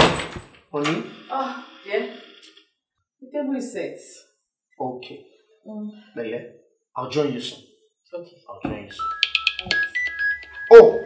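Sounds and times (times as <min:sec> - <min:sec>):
wooden door banging: 0:00.0 - 0:00.6.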